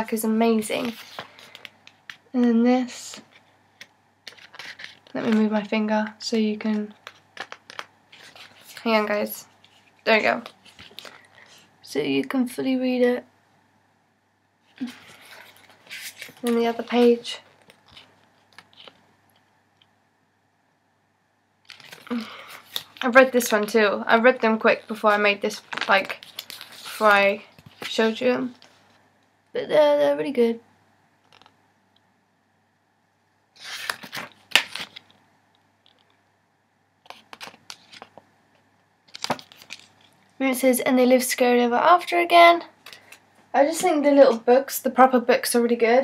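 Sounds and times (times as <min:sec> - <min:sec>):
paper handling rustle: 0:00.4 - 0:02.3, 0:03.1 - 0:11.7, 0:14.7 - 0:19.1, 0:21.7 - 0:29.0, 0:33.6 - 0:35.2, 0:37.0 - 0:38.2, 0:39.1 - 0:40.3.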